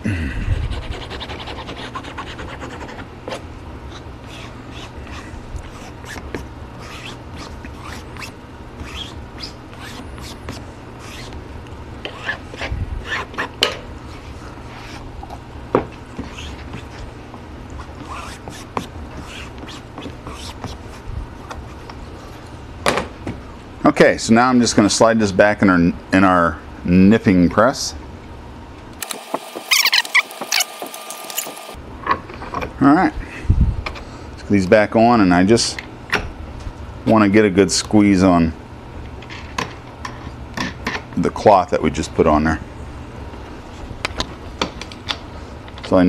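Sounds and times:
steady low hum: 0:00.0 - 0:46.0
bone folder scraping book cloth: 0:01.0 - 0:11.4, 0:14.1 - 0:15.1, 0:16.2 - 0:17.1, 0:17.8 - 0:21.9.

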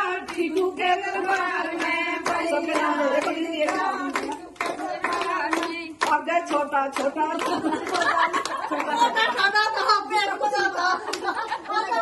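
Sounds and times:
women clapping rhythmically: 0:00.0 - 0:12.0
women's voices: 0:00.0 - 0:12.0.

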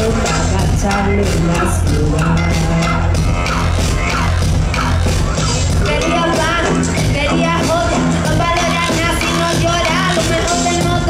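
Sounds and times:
live hip-hop music: 0:00.0 - 0:11.0.

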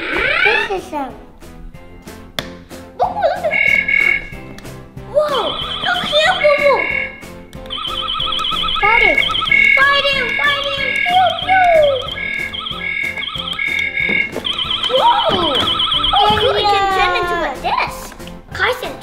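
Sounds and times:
electronic beep pattern: 0:03.5 - 0:04.3, 0:05.3 - 0:16.9
swooping electronic effects: 0:05.3 - 0:16.8
warbling alarm tone: 0:05.4 - 0:16.8.

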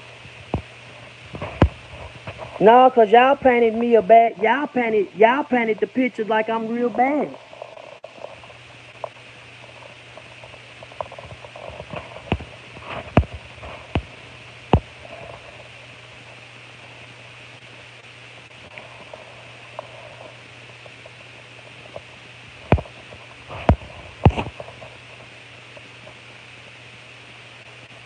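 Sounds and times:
low background hiss and hum: 0:00.0 - 0:28.0.

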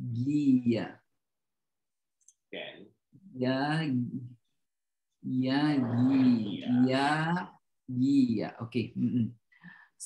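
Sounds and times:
person speaking: 0:05.4 - 0:07.1.

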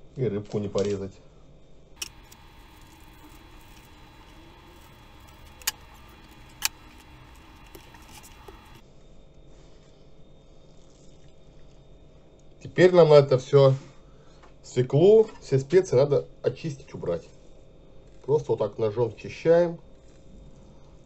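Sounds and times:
plastic cling film crinkling: 0:02.0 - 0:08.8
sharp clicks: 0:02.0 - 0:08.8.

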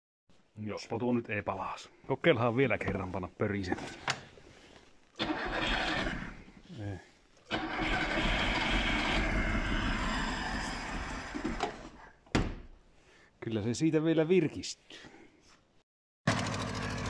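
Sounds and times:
car engine cranking on starter: 0:05.2 - 0:06.3, 0:07.5 - 0:10.0.

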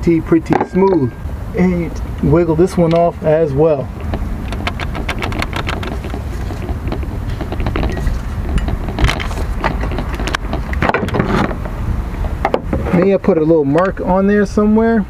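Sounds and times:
steady low rumble: 0:00.0 - 0:15.0
metallic clicks and knocks: 0:02.7 - 0:03.1, 0:04.0 - 0:11.7.

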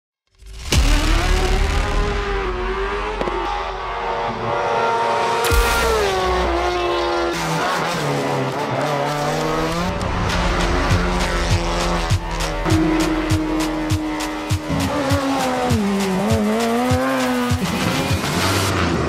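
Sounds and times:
race car engines revving: 0:00.8 - 0:19.0
background music: 0:09.1 - 0:19.0.

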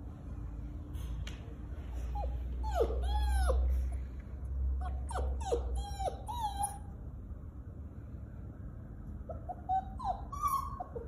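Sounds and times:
puppy whining: 0:02.0 - 0:04.0, 0:04.7 - 0:07.0, 0:09.2 - 0:11.0.

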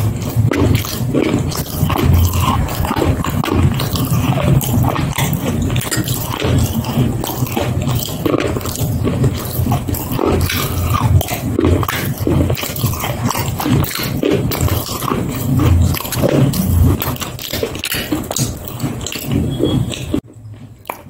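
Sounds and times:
person chewing with wet smacks: 0:00.0 - 0:21.0.

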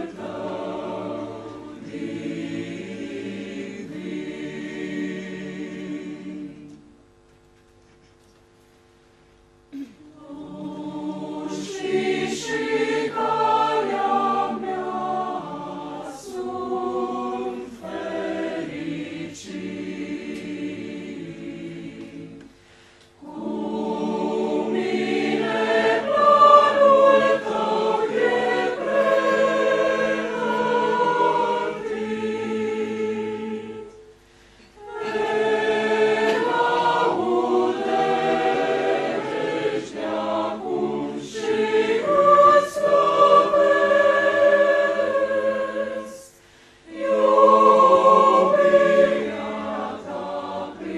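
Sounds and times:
choir singing in parts: 0:00.0 - 0:07.0, 0:09.7 - 0:50.9.

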